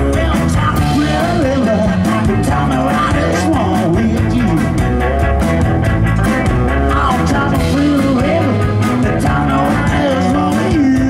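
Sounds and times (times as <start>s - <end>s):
guitar notes bending in pitch: 0.0s - 11.0s
live rock band playing: 0.0s - 11.0s.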